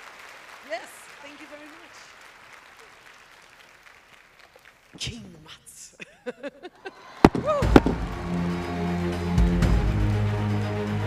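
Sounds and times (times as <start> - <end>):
audience applause: 0.0 - 5.2, 6.7 - 11.0.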